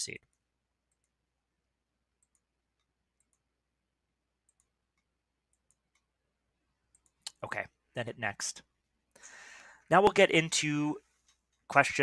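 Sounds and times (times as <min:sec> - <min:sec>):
faint computer mouse clicks: 0:02.2 - 0:03.4.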